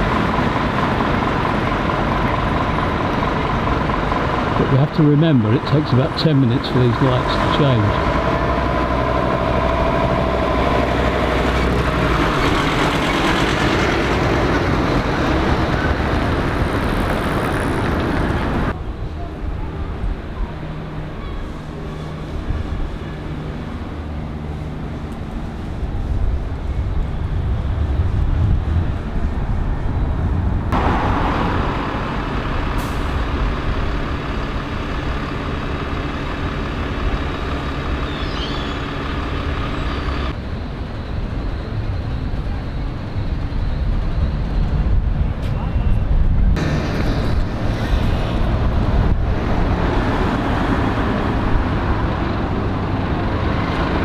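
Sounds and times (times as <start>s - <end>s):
diesel bus engine rumble: 0.0s - 54.0s.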